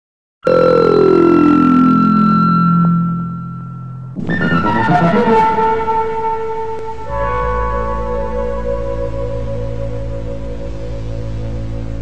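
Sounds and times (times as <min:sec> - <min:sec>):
high synthesized tone: 0:00.4 - 0:12.0
low tone sliding down: 0:00.5 - 0:12.0.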